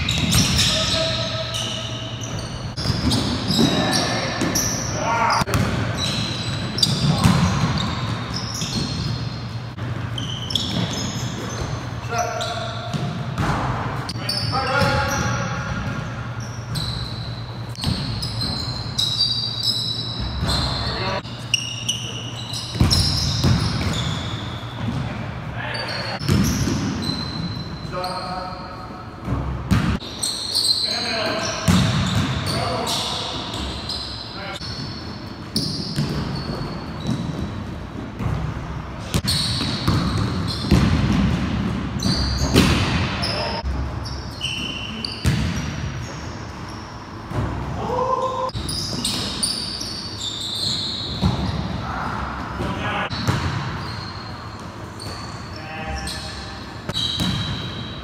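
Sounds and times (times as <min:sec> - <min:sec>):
sneaker squeaks: 0:00.0 - 0:58.0
basketball bouncing: 0:05.5 - 0:06.1, 0:06.8 - 0:09.2, 0:12.9 - 0:13.8, 0:17.7 - 0:18.6, 0:22.7 - 0:24.1, 0:26.2 - 0:27.1, 0:31.7 - 0:32.4, 0:35.5 - 0:43.2, 0:45.2 - 0:45.9, 0:53.1 - 0:53.8, 0:56.9 - 0:57.8.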